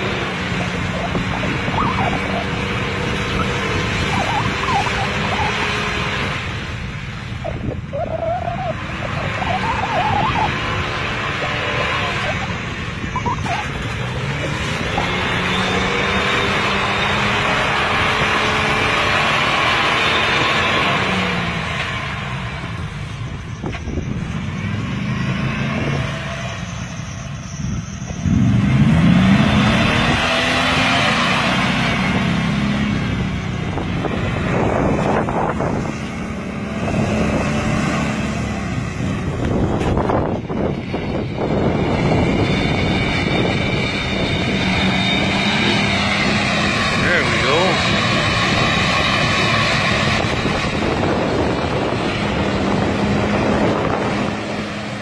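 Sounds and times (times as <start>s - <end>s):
off-road vehicle engine revving: 0.0s - 55.0s.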